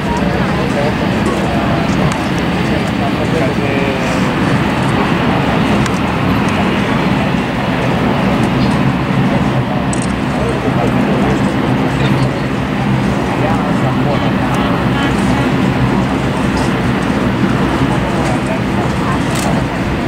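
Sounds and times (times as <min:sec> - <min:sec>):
boat engine drone: 0:00.0 - 0:20.0
people talking indistinctly: 0:00.0 - 0:20.0
water noise: 0:00.0 - 0:20.0
wind: 0:00.0 - 0:20.0.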